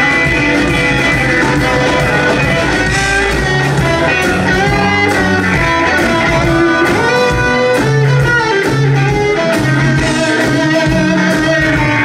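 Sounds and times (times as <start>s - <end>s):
electric guitar lines: 0.0s - 12.0s
keyboard bass and drums: 0.0s - 12.0s.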